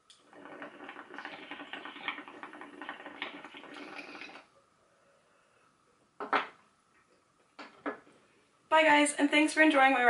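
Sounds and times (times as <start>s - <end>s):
water bubbling in glass pipe: 0.1s - 4.5s.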